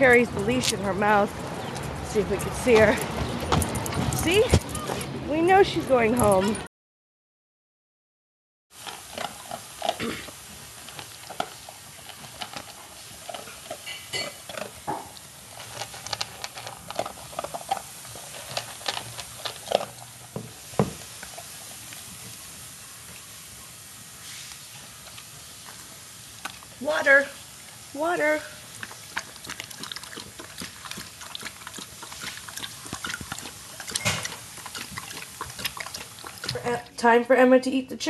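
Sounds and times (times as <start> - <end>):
kitchenware clinking and clattering: 33.8 - 35.1.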